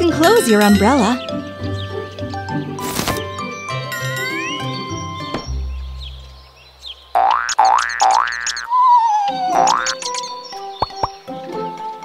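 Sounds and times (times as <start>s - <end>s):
light children's background music: 0.0s - 6.2s, 9.2s - 12.0s
cartoon boing sound effects: 7.2s - 10.1s.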